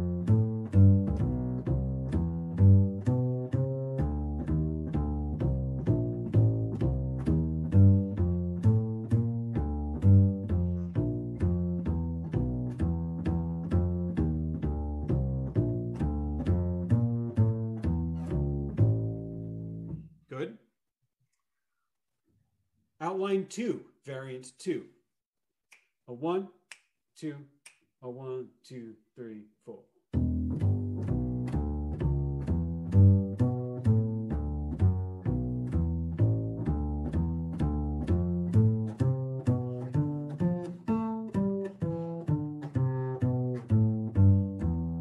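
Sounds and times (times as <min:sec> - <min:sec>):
plucked double bass note: 0:00.0 - 0:20.1, 0:30.1 - 0:45.0.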